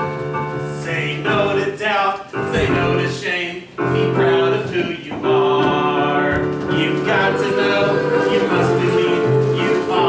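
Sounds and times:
musical accompaniment: 0.0 - 10.0
choir singing: 5.5 - 10.0.

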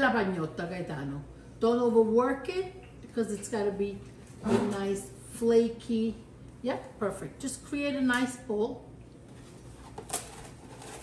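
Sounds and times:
plastic wrap box crinkling: 9.7 - 11.0.

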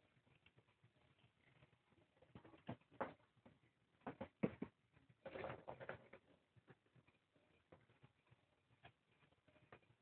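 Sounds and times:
kittens tapping and scampering: 0.0 - 10.0.

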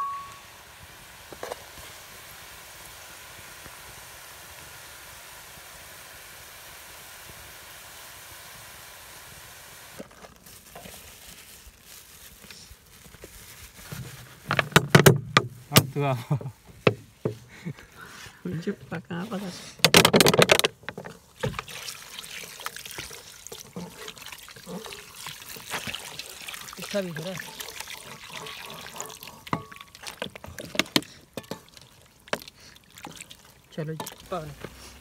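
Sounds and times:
tap water running into metal bowl: 20.4 - 34.7
knocks and clatters in steel bowl: 26.8 - 32.4.

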